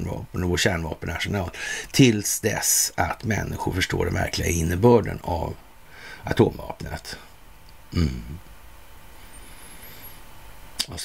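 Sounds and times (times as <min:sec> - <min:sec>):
man speaking: 0:00.0 - 0:05.6, 0:06.2 - 0:07.3
low steady background hiss: 0:00.0 - 0:11.0.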